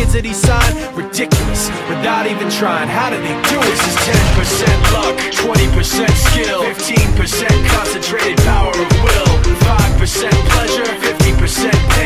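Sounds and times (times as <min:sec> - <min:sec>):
heavy kick-drum beat: 0:00.0 - 0:00.8, 0:03.7 - 0:12.0
rapped vocals: 0:00.0 - 0:12.0.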